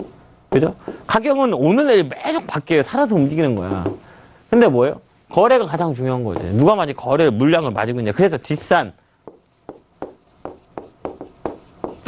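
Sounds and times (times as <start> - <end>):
taps and strokes on touchscreen: 9.2 - 12.0.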